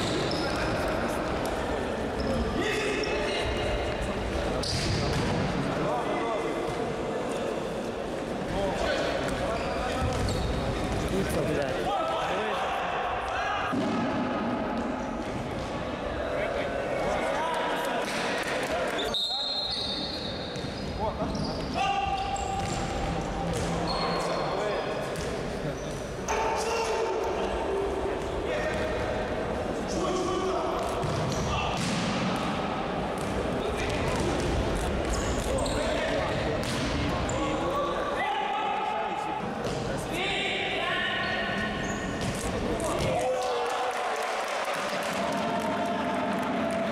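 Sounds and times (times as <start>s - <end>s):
high shoe squeaks: 0.0s - 0.8s, 9.4s - 10.8s, 19.0s - 22.9s, 23.8s - 24.8s, 35.1s - 36.2s, 41.2s - 42.5s.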